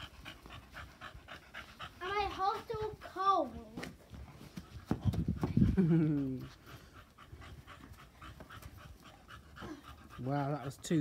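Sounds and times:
dog panting: 0.0s - 11.0s.

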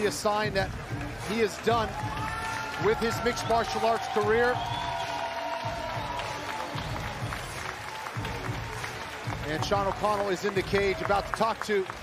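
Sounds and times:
background music: 0.0s - 12.0s
crowd noise and applause: 0.0s - 12.0s.

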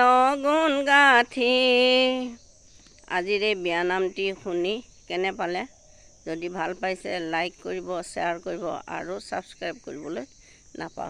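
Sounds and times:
woman speaking: 0.0s - 2.4s, 3.1s - 5.7s, 6.3s - 11.0s
crickets chirping: 0.0s - 11.0s.

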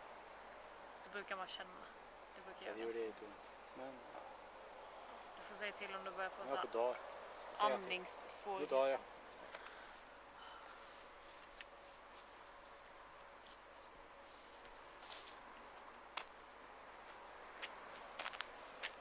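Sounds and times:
outdoor background hiss: 0.0s - 19.0s.

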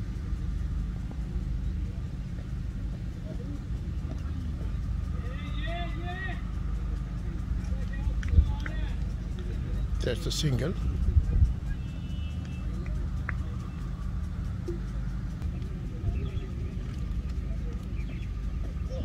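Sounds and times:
steady low rumble: 0.0s - 19.0s
distant players calling out: 3.0s - 19.0s.

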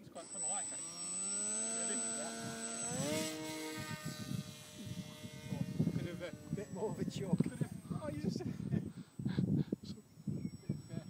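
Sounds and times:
electric motor and propeller whining: 0.0s - 11.0s.

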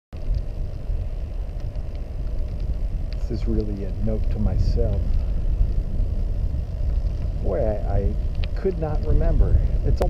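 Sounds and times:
road noise: 0.2s - 10.0s
wind buffeting microphone: 0.2s - 10.0s.

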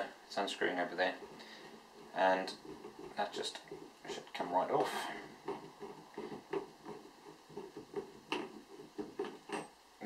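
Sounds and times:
air cylinder thread sounds: 0.0s - 10.0s.

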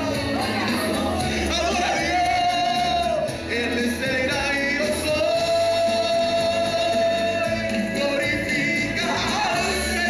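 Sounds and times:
man singing into microphone: 0.0s - 10.0s
musical accompaniment: 0.0s - 10.0s.

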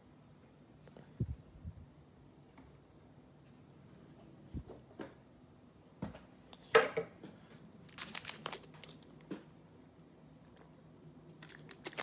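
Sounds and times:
packaging crinkling: 7.8s - 9.2s, 11.4s - 12.0s.

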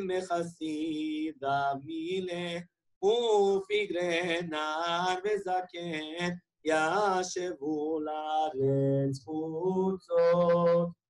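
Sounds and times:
man chanting a lament: 0.0s - 10.9s.

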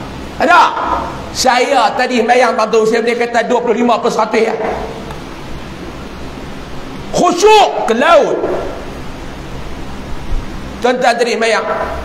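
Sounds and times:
background hiss: 0.0s - 12.0s
man speaking: 0.4s - 5.0s, 7.1s - 8.7s, 10.8s - 12.0s.

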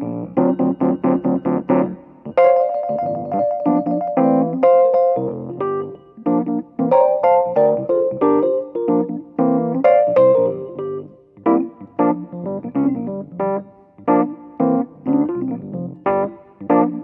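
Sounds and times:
funky electric piano: 0.0s - 17.0s.

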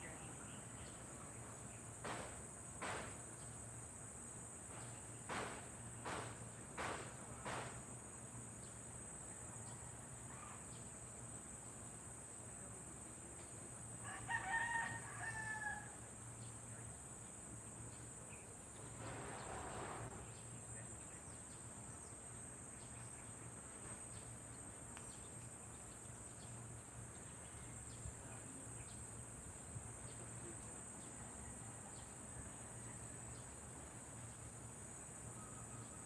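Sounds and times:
crickets chirping drone: 0.0s - 36.0s
rooster crowing: 14.0s - 16.0s.

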